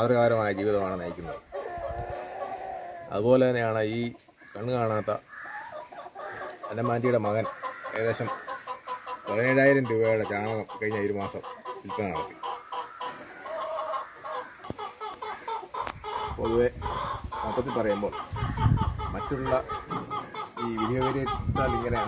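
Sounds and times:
chickens clucking: 0:00.0 - 0:22.0
man talking in a low voice: 0:16.4 - 0:18.3, 0:19.0 - 0:19.9, 0:20.6 - 0:22.0.

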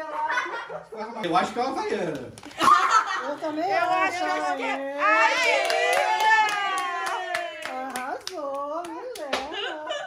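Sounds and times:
group clapping along: 0:05.3 - 0:09.6.

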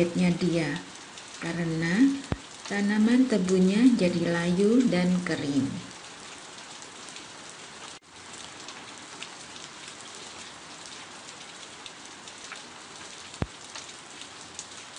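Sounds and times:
rain pattering: 0:00.0 - 0:14.9.

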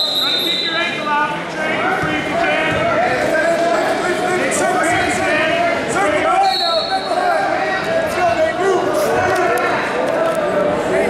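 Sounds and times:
echoing chatter of many voices: 0:00.0 - 0:11.0.

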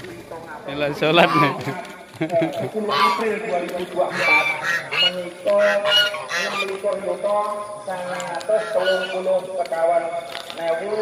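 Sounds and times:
geese honking: 0:00.6 - 0:11.0.

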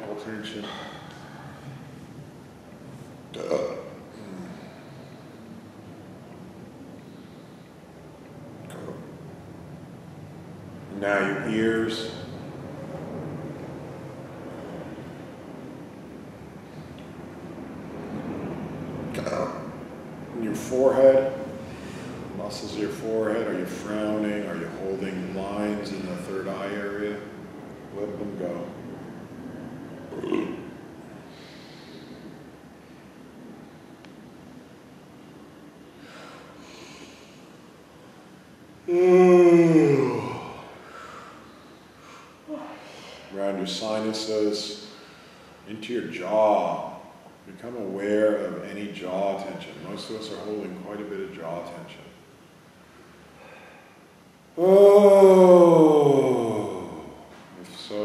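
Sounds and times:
person burping: 0:03.3 - 0:04.6, 0:19.2 - 0:19.7, 0:30.1 - 0:30.8
person groaning sigh: 0:03.4 - 0:04.8, 0:38.9 - 0:41.3, 0:54.6 - 0:57.3.

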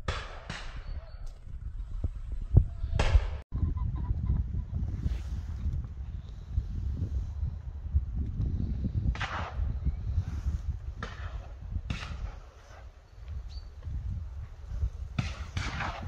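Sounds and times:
wind buffeting microphone: 0:00.0 - 0:16.0
shotgun shots: 0:15.2 - 0:16.0.

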